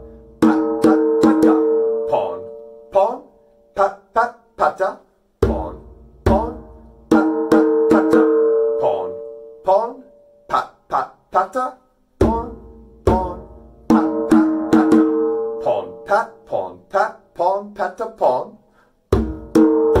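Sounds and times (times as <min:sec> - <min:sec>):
djembe drumming: 0:00.4 - 0:02.0, 0:05.4 - 0:08.6, 0:12.2 - 0:15.5, 0:19.1 - 0:20.0.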